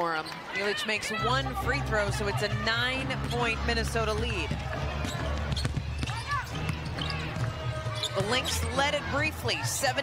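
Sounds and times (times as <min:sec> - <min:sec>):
arena crowd rumble: 0:00.0 - 0:10.0
sneakers squeaking: 0:03.0 - 0:09.7
basketball dribbling: 0:04.1 - 0:08.8.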